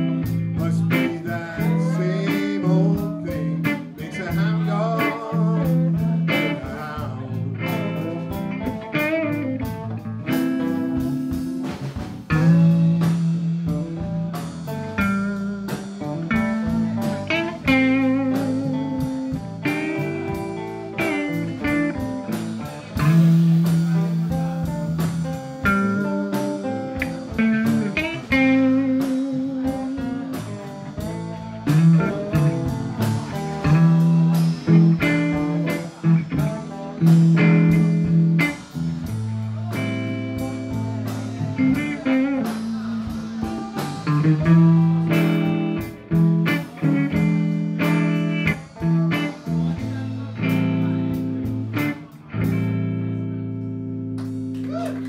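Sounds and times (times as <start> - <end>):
bass guitar: 0.0 - 55.0
drums: 0.0 - 55.0
electric guitar lead: 0.0 - 55.0.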